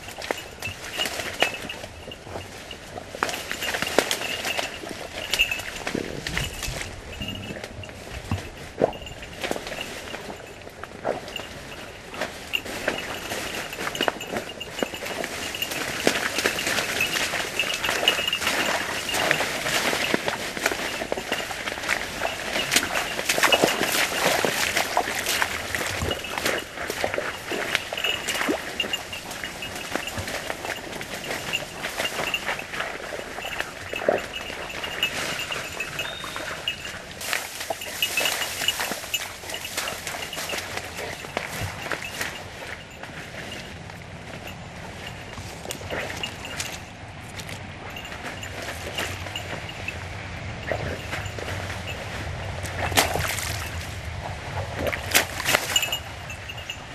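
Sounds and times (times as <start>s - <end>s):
footsteps in muddy water: 0.0s - 56.9s
rustling through dry reeds: 0.0s - 56.9s.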